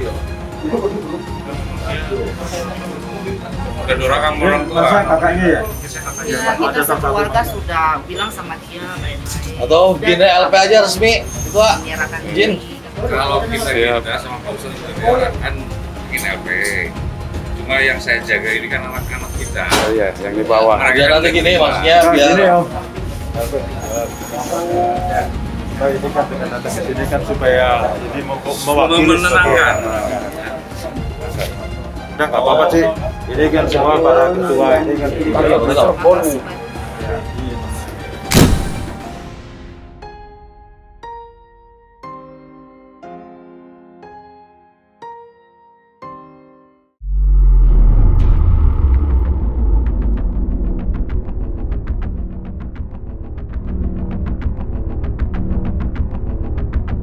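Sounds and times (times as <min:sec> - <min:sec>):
steady low rumble: 0:47.0 - 0:57.0.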